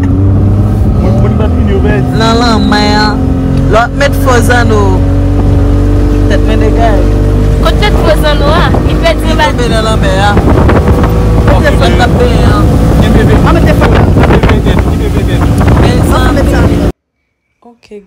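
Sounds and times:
motorboat engine running: 0.0s - 16.9s
voices: 1.0s - 5.0s, 6.2s - 10.5s, 11.3s - 16.9s
wind buffeting microphone: 7.0s - 17.0s.

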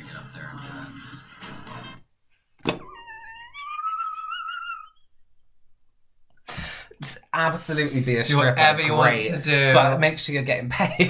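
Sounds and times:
thump: 2.6s - 2.9s.

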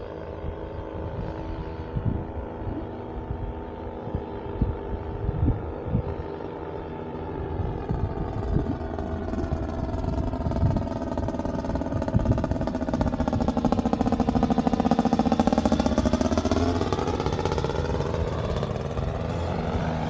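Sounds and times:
paramotor engine droning overhead: 0.0s - 20.0s.

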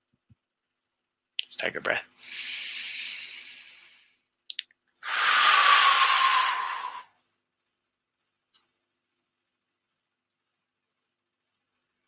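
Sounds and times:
mouth clicks: 4.4s - 4.8s.

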